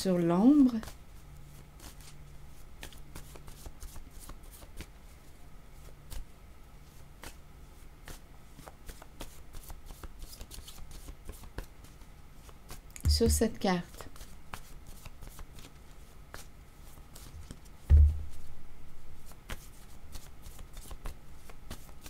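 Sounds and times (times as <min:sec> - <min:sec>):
cards being shuffled: 0:00.6 - 0:05.1, 0:05.8 - 0:06.3, 0:06.9 - 0:07.4, 0:08.0 - 0:18.5, 0:19.2 - 0:22.0.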